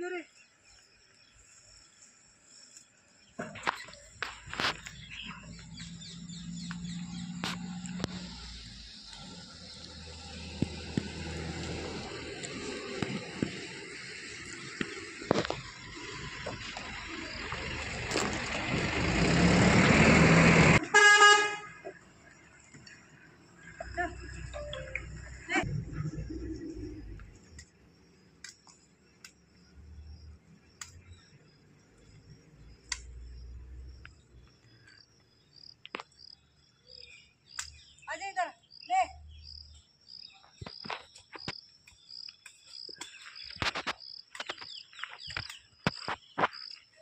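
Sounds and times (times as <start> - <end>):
faint insect chirping: 0.0 - 18.4, 21.7 - 47.0
vehicle engine and tyre noise: 3.4 - 37.8
vehicle horn honk: 20.8 - 21.8
sharp snaps: 30.8 - 31.0, 32.8 - 33.2, 37.5 - 37.9.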